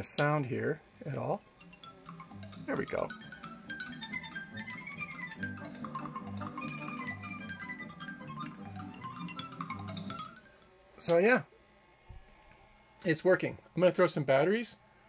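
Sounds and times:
film music through small speakers: 0.0s - 11.3s.

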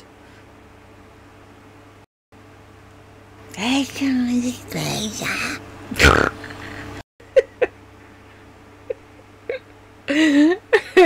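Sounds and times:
woman's stifled laughter: 6.4s - 7.8s, 8.8s - 11.0s.

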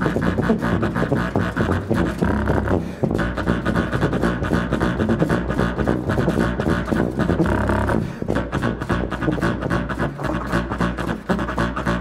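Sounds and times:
jazz tuba and low reeds: 0.0s - 12.0s.

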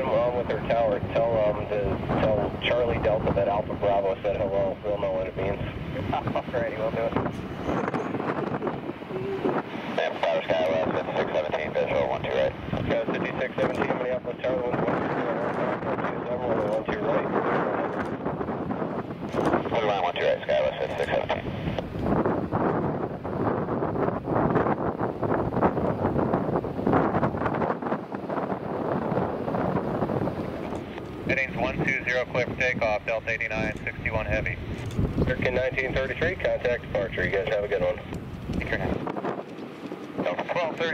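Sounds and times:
jet engines running: 0.0s - 40.9s
wind buffeting microphone: 0.0s - 40.9s.

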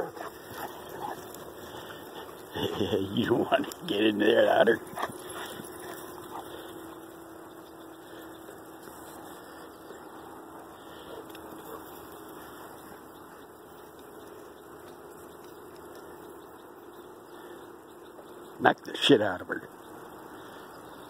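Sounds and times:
faint dog noises: 0.0s - 14.5s
low steady hum: 0.0s - 21.0s
steady background hiss: 0.0s - 21.0s.

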